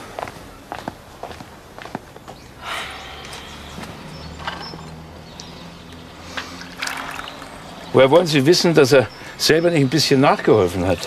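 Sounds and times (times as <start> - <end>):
quiet footsteps on a floor: 0.2 - 2.4.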